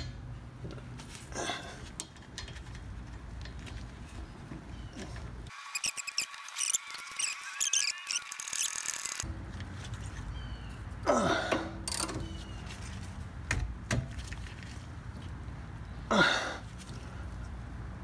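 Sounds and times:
rapid sharp clicks and squeaks: 5.5s - 9.3s.

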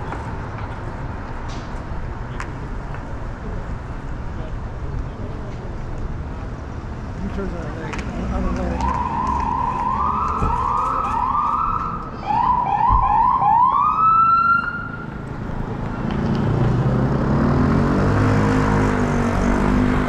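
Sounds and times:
street traffic noise: 0.0s - 20.0s
emergency siren whooping: 8.8s - 15.1s.

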